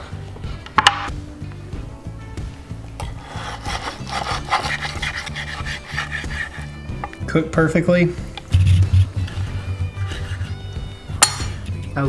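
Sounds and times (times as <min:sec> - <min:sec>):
knife sawing through crisp crust: 0:03.0 - 0:06.9, 0:08.5 - 0:10.7.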